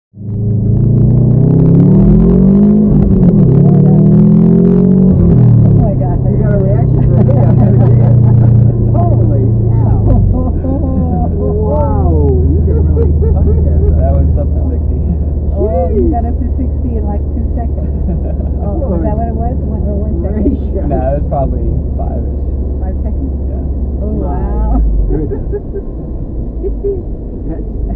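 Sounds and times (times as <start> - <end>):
car engine accelerating hard: 0.2 - 27.9
passengers laughing and talking: 5.3 - 27.9.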